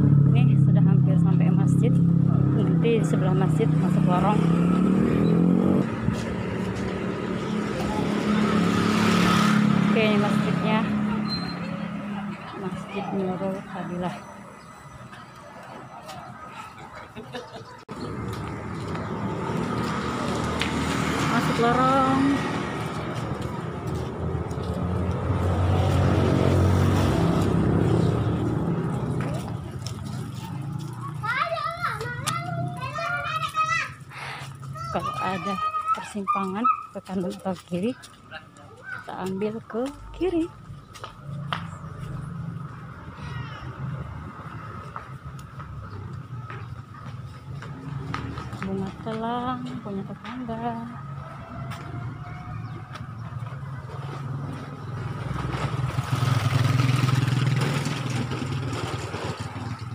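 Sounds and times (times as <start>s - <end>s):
street traffic noise: 0.0s - 59.9s
vehicle engine passing: 0.0s - 59.9s
children calling out: 30.9s - 36.9s, 43.0s - 44.6s.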